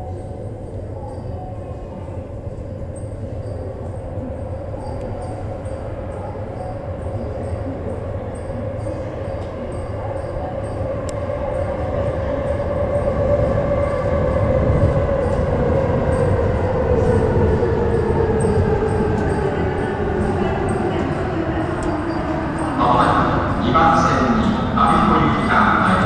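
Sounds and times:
train rumbling in tunnel: 0.0 - 26.0
train motor hum: 16.7 - 26.0.

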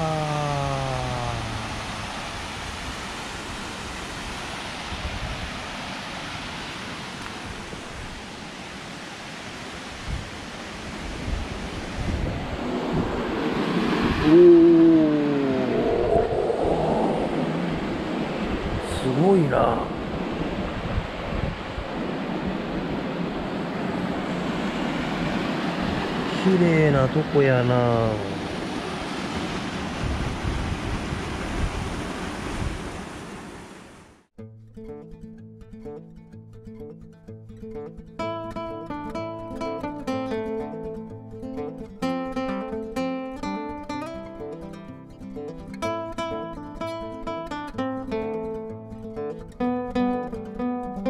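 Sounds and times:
water rushing over a dam: 0.0 - 15.8, 23.3 - 33.9
wind buffeting microphone: 1.2 - 5.7, 10.0 - 26.3, 28.4 - 33.3.

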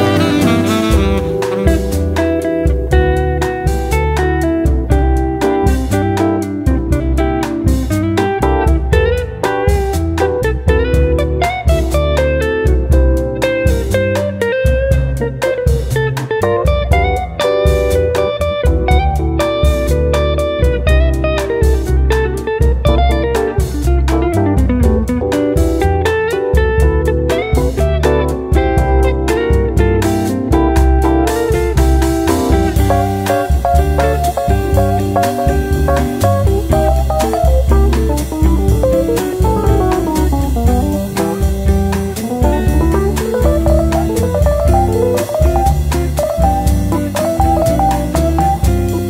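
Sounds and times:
bass: 0.0 - 49.0
guitar lead line: 0.0 - 49.0
steady drum beat: 0.0 - 49.0.

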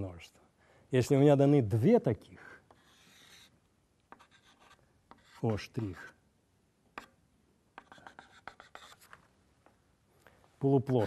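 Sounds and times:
chalk strokes on chalkboard: 2.7 - 6.2, 7.8 - 9.2.

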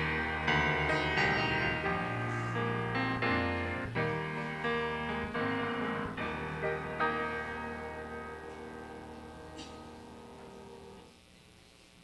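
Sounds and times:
piano chord ringing: 0.0 - 11.1.

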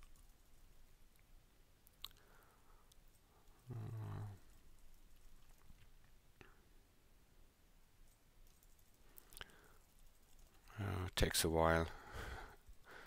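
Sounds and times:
person humming: 3.6 - 4.5.

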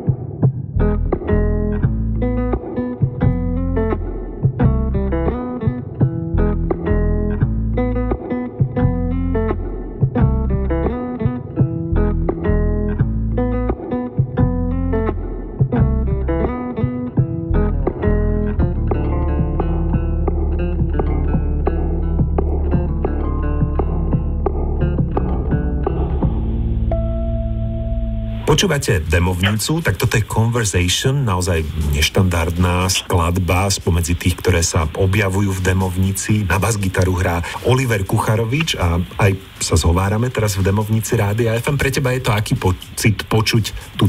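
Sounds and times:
electric bass guitar solo: 0.8 - 29.6.

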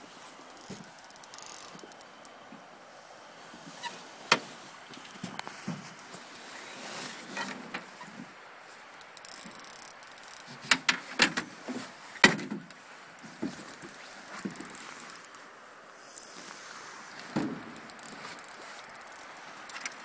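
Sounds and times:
faint steady hiss: 0.0 - 20.0.

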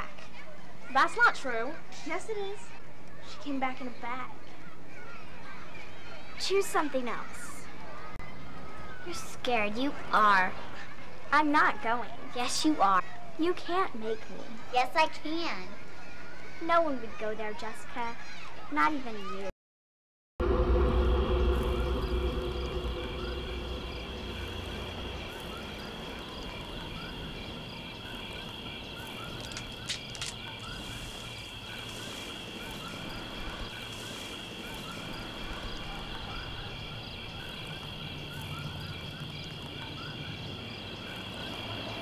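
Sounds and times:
insects chirring: 20.4 - 42.0
low rumble: 20.4 - 42.0
frogs calling: 20.5 - 42.0
cluster of clicks: 28.9 - 32.9.

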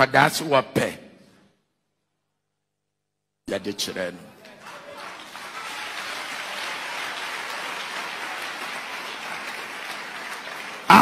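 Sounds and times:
congregation clapping: 4.0 - 11.0.

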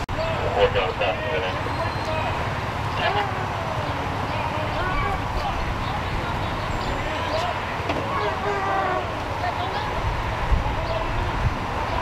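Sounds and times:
idling vehicles and traffic: 0.0 - 12.0.

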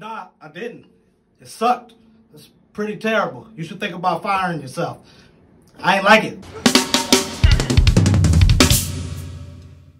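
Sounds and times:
cymbal crash: 6.4 - 9.9
drum fill on snare and toms: 6.5 - 9.8.

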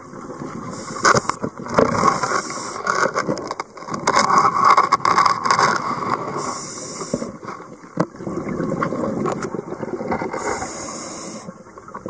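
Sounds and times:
underwater clicks and crackles: 0.0 - 12.0
hiss of inhaling through regulator: 0.6 - 1.4, 2.1 - 2.9, 6.3 - 7.4, 10.3 - 11.6.

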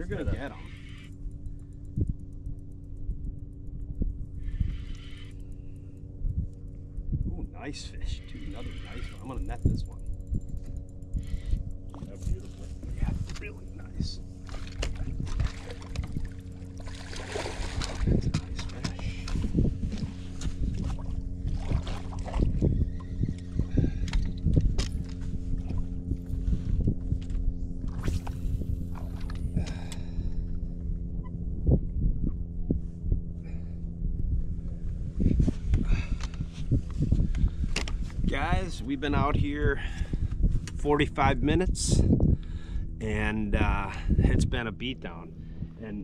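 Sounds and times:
steady low hum: 0.0 - 46.0
knocks and thumps against boat: 14.4 - 19.4.

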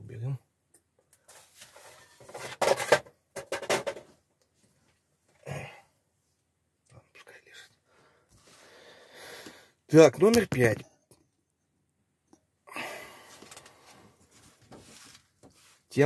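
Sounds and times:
magazines rustling on table: 1.3 - 4.0, 13.3 - 15.9.

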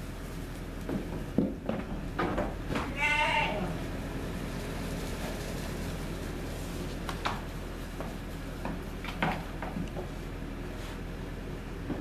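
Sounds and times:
lamb bleating: 2.8 - 3.8.

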